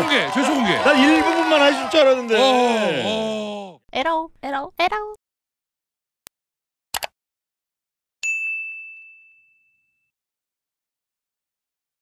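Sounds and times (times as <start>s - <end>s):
bright bell ding: 8.2s - 10.1s.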